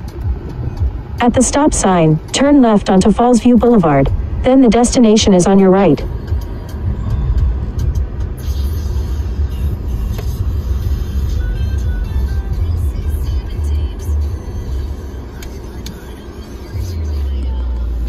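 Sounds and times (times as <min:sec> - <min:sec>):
car interior engine and road rumble: 0:00.0 - 0:18.0.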